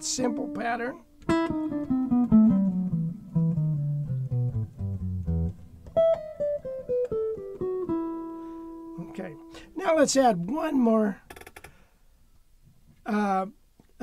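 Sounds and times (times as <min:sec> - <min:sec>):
jazz guitar picked notes: 0:00.0 - 0:11.1.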